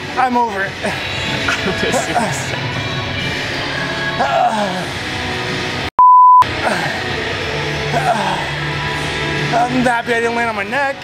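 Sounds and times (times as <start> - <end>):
background music: 0.0 - 11.0
high-pitched censor bleep: 6.0 - 6.4.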